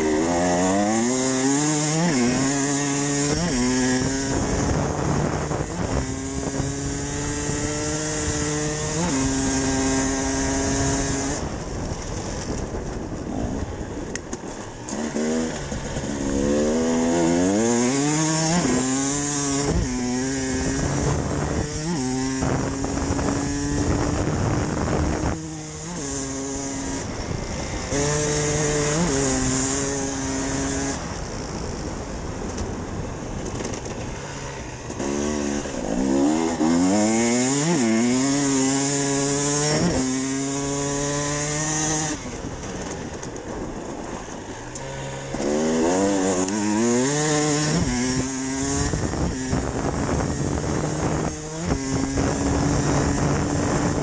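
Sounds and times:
motorcycle engine accelerating: 0:00.0 - 0:54.0.

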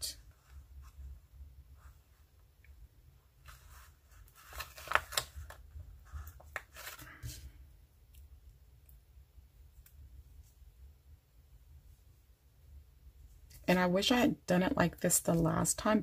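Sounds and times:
paper rustling and crackling: 0:03.4 - 0:07.5.

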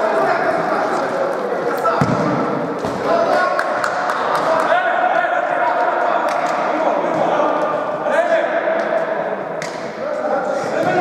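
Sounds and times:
ball thudding on court: 0:02.0 - 0:03.0.

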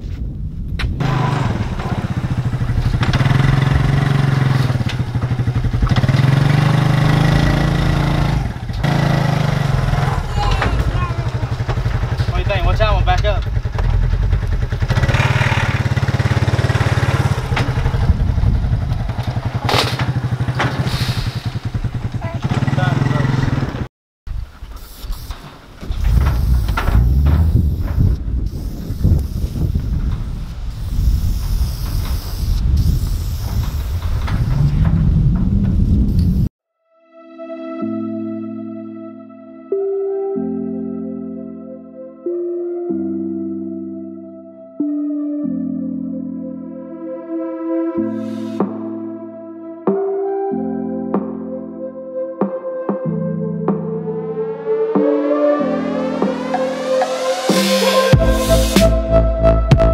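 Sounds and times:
atv engine revving: 0:01.0 - 0:23.9, 0:25.9 - 0:36.4.

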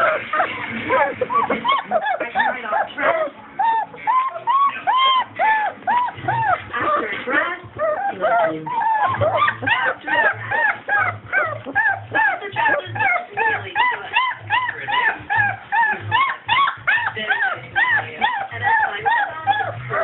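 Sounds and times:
puppy yelping and whimpering: 0:00.0 - 0:20.0.

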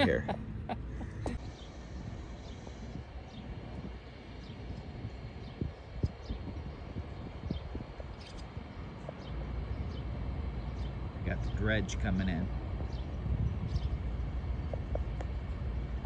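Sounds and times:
low wind rumble on microphone: 0:00.0 - 0:16.0.

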